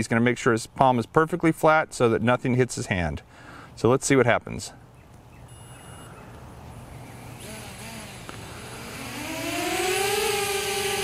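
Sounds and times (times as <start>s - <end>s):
drone whining and buzzing: 6.8s - 11.0s
drone propellers hiss: 7.1s - 11.0s.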